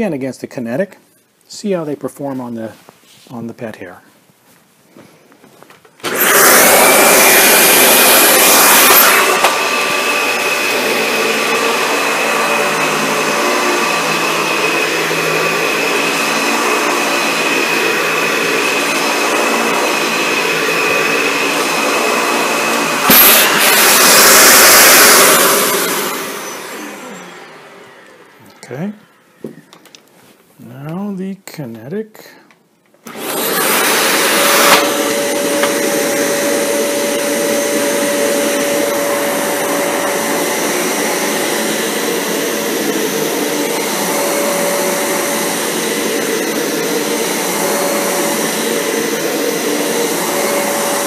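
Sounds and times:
upright vacuum cleaner running: 6.0 - 30.0, 33.0 - 51.0.

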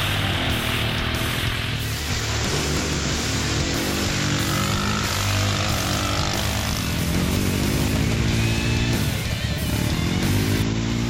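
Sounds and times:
buggy engine running under load: 0.0 - 11.0
rock music: 0.0 - 11.0.

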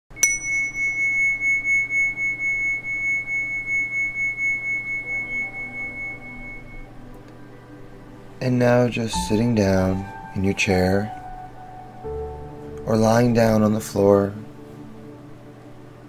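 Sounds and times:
metal meditation chime ringing: 0.1 - 6.9.

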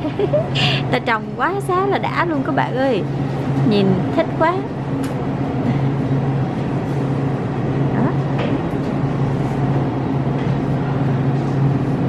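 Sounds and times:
refrigerated display case humming: 0.0 - 12.0.

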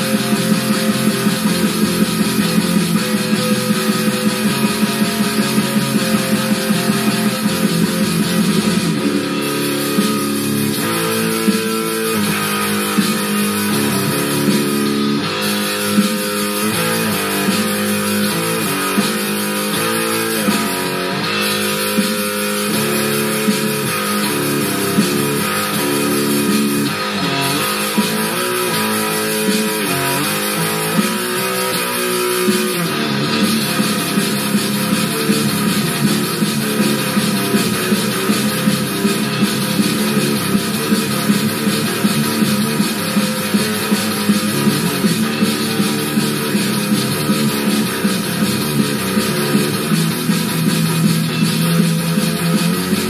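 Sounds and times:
electric guitar metal riffs: 0.0 - 53.0
fast drum loop: 0.0 - 53.0.

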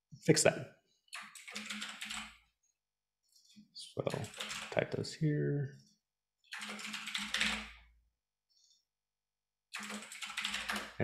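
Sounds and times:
typing on computer keyboard: 1.2 - 2.4, 4.2 - 4.7, 6.5 - 7.8, 9.8 - 11.0.

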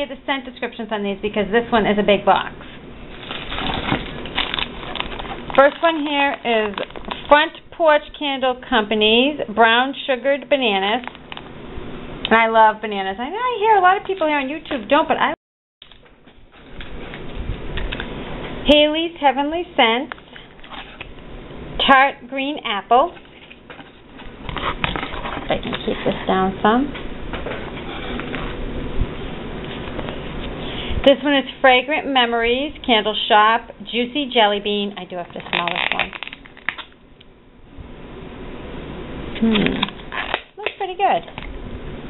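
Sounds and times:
plastic pack rustling and crinkling: 3.1 - 7.4, 35.1 - 37.0.

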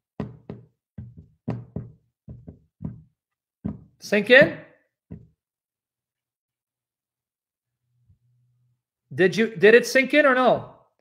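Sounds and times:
dull knocks: 0.2 - 4.5, 5.1 - 5.4.

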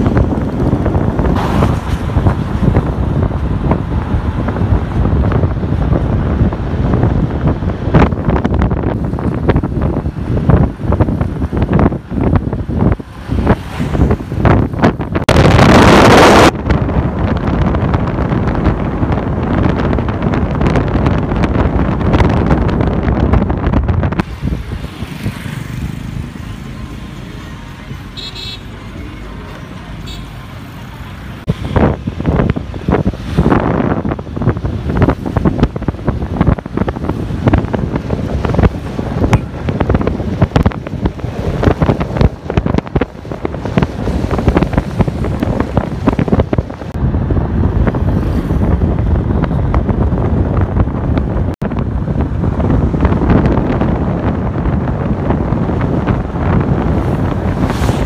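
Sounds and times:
wind buffeting microphone: 0.0 - 28.2, 30.8 - 58.0
vehicle road noise: 0.0 - 58.0.

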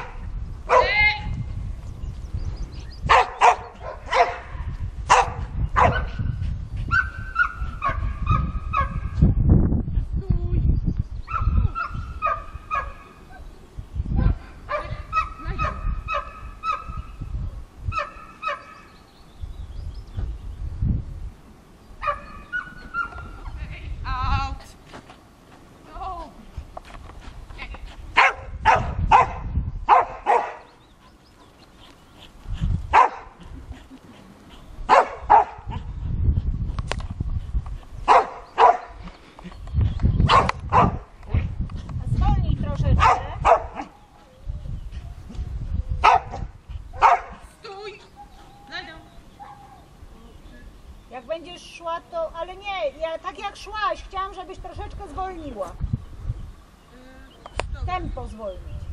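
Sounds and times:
dog barking: 0.0 - 1.0, 3.1 - 4.5, 5.1 - 6.2, 6.9 - 9.0, 11.3 - 13.1, 14.7 - 17.0, 18.0 - 18.7, 22.0 - 23.2, 28.2 - 30.7, 32.9 - 33.3, 34.9 - 35.9, 38.1 - 39.0, 40.3 - 41.0, 43.0 - 44.0, 46.0 - 47.4, 49.4 - 49.9.

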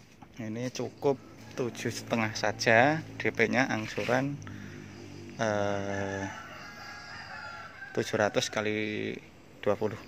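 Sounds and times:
rooster crowing: 5.5 - 9.1.

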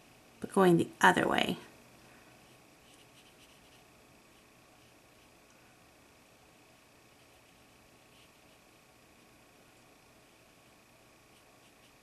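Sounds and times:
paintbrush stroking paper: 2.5 - 5.4, 7.1 - 8.7, 10.2 - 12.0.

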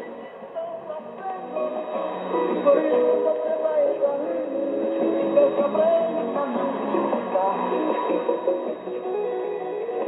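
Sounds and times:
song over shortwave radio: 0.0 - 10.0.

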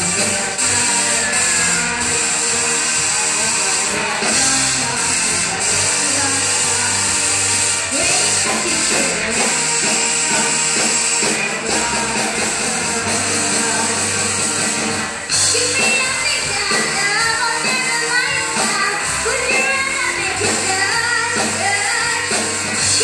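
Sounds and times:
live rock band playing: 0.0 - 23.0.

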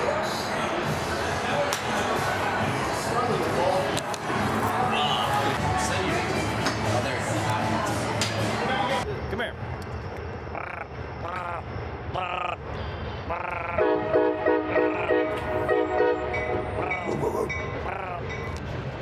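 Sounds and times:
goose honking: 13.3 - 16.2.

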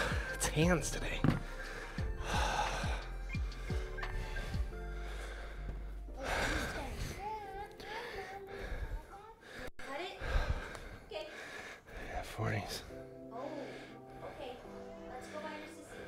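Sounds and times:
man breathing hard: 0.0 - 0.4, 1.4 - 12.4, 13.4 - 16.0
background music: 0.0 - 16.0.

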